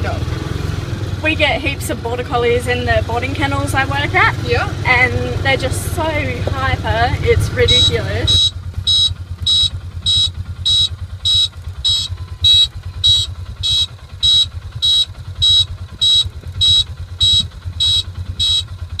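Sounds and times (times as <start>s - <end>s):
vehicle engine idling: 0.0s - 19.0s
short high electronic beeps: 7.7s - 18.6s.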